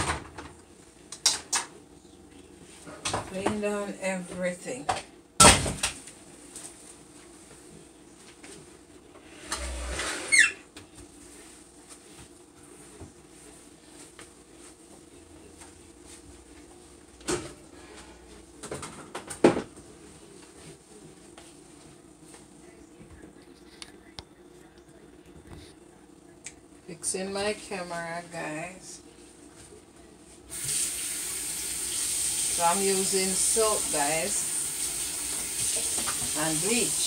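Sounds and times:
faint steady hum: 0.1 - 37.0.

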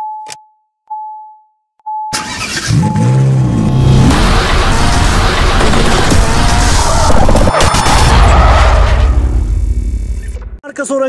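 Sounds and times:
car engine revving: 2.2 - 10.1.

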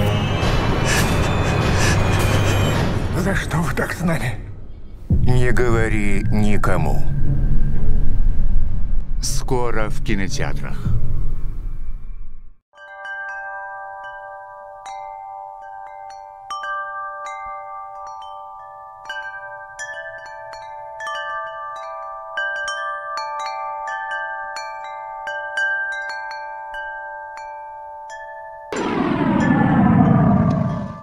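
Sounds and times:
chimes ringing: 12.8 - 31.0.

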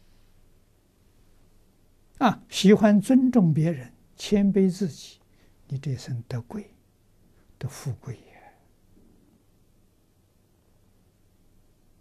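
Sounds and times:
elderly man speaking softly: 2.2 - 6.8, 7.6 - 8.6.

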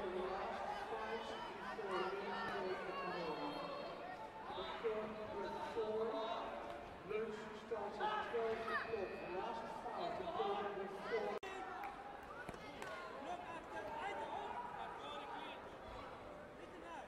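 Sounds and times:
man announcing over loudspeaker: 0.0 - 11.8
voices in a hall: 0.0 - 17.0.

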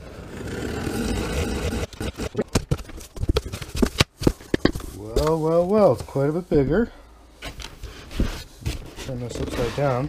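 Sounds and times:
cardboard flaps clicking and knocking: 2.4 - 5.4.

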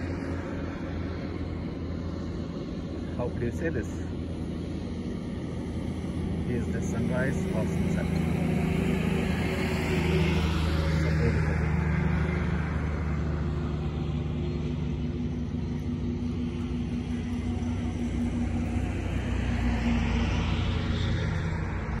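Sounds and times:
low engine hum: 0.0 - 22.0
vehicle passing by: 4.7 - 22.0.

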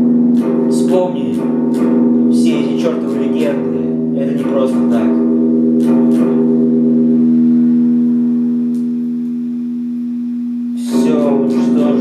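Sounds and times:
electric guitar picking and chord: 0.0 - 12.0.

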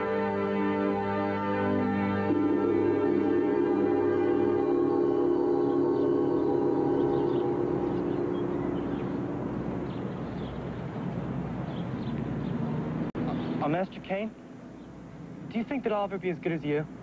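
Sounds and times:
large gong ringing: 0.0 - 11.7.

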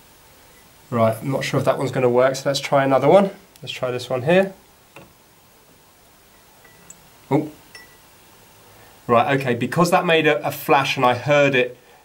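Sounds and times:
faint glassy tinkle: 6.3 - 7.1, 7.7 - 8.1.

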